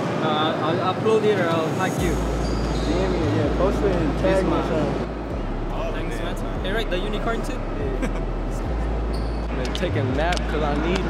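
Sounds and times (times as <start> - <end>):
indistinct voices talking: 0.9 - 11.0
music with deep bass line: 2.0 - 11.0.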